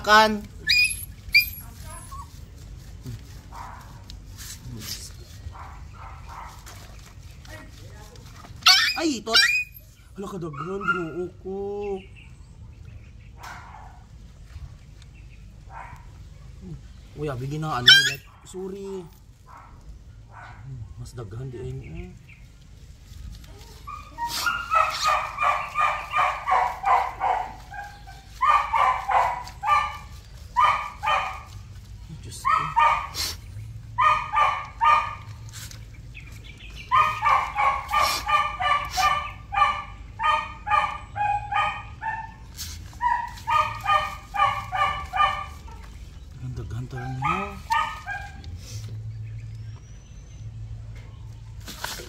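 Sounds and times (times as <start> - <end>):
dog barking: 5.5 - 6.8, 8.6 - 9.7, 10.5 - 11.2, 13.4 - 14.1, 15.6 - 16.6, 17.8 - 18.5, 19.5 - 20.7, 23.8 - 31.7, 32.3 - 35.5, 36.8 - 46.0, 46.9 - 48.6.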